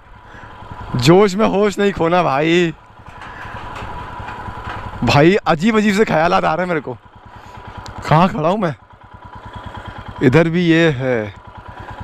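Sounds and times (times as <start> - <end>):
motorcycle engine running slowly: 0.0 - 12.0.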